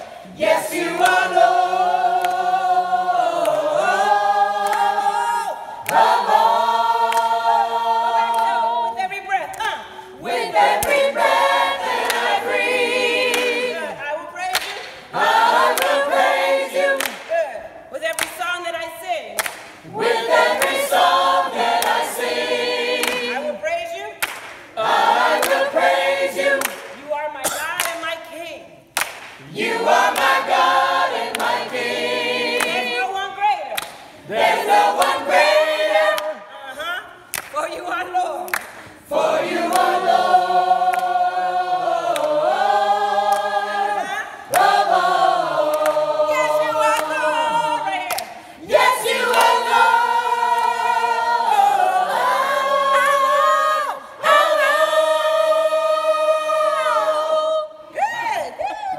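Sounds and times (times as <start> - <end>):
choir singing a cappella: 0.0 - 14.1, 14.7 - 17.4, 19.8 - 23.7, 24.6 - 27.0, 29.4 - 36.9, 38.8 - 58.6.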